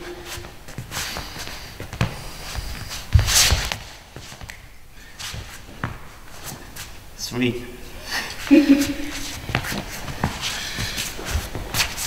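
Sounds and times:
sneakers shuffling on floor: 0.0 - 7.1, 8.3 - 12.0.

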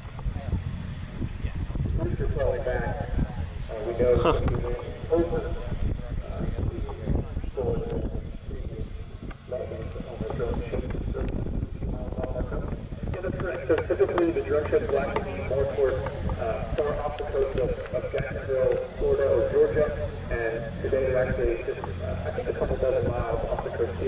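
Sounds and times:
indistinct voices talking: 0.3 - 24.0.

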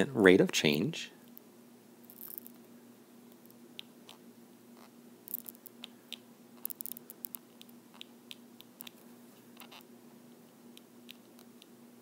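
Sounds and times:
steady low hum: 0.0 - 12.0
stylus tapping and scratching on tablet: 4.8 - 9.0, 10.8 - 11.7.

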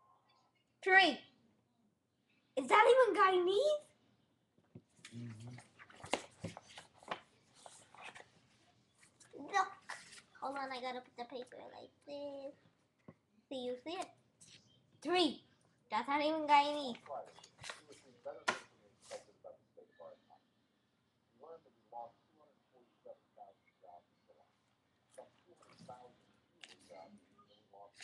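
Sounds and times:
low hum of a voice: 5.0 - 5.8, 17.0 - 20.6, 21.4 - 28.0
paper rustling: 5.1 - 10.6, 16.9 - 19.3.

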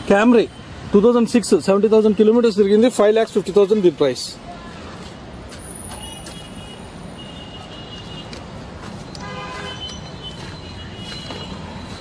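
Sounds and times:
road traffic rumble: 0.0 - 12.0
distant horn toots: 9.2 - 11.9.

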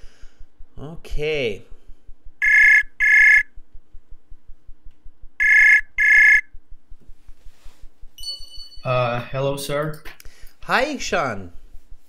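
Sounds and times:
high electronic ringing tones: 2.4 - 3.6, 5.4 - 6.5, 8.2 - 9.1.

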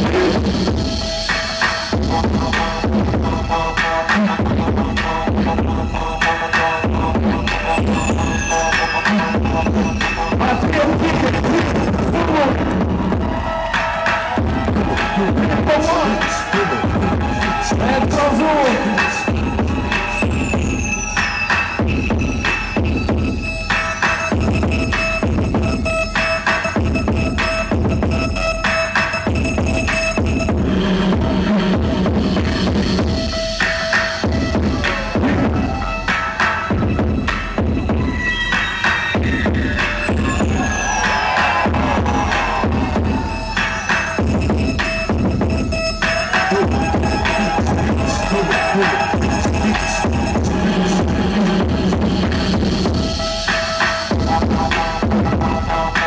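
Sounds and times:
hip-hop dance track: 0.0 - 56.0.

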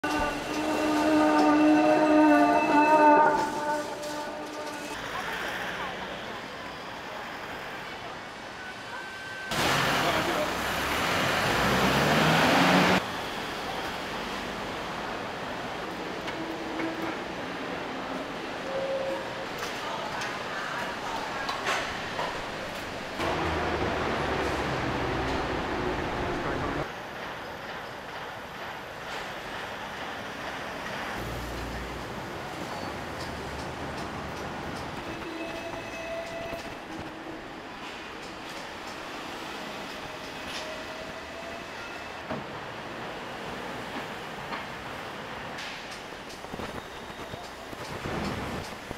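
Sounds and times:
city street traffic: 0.0 - 48.9
vehicle accelerating past: 10.8 - 13.0.

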